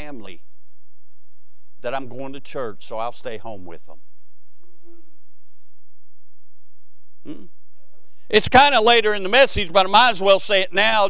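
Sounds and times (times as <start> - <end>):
person humming: 4.6 - 5.2, 7.2 - 7.5.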